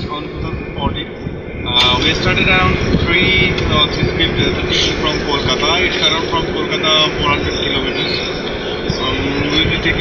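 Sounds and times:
car engine rumble: 0:00.0 - 0:10.0.

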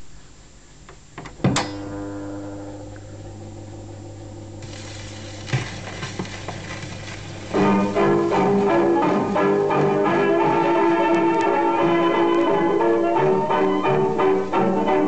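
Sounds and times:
record hiss: 0:00.0 - 0:15.0
band playing on old record: 0:04.6 - 0:15.0.

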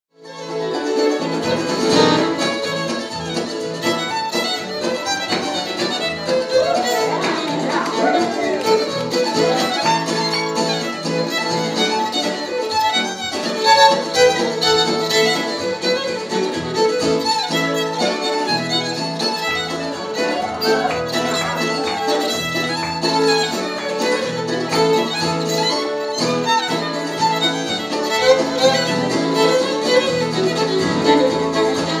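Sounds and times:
bowed fiddle: 0:00.1 - 0:32.0
strummed autoharp: 0:00.2 - 0:32.0.

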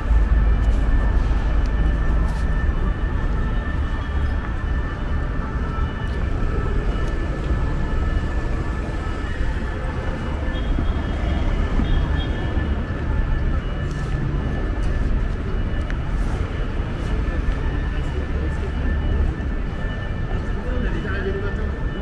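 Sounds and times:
traffic rumble: 0:00.0 - 0:22.0.

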